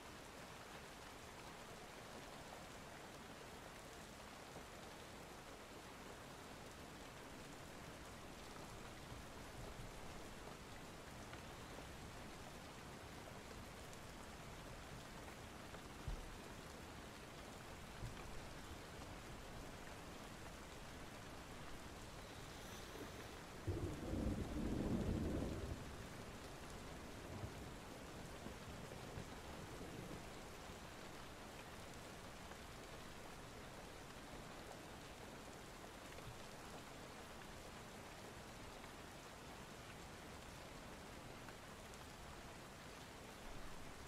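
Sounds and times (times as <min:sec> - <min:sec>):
steady rain: 0:00.0 - 0:44.0
low rumble of thunder: 0:21.6 - 0:30.5.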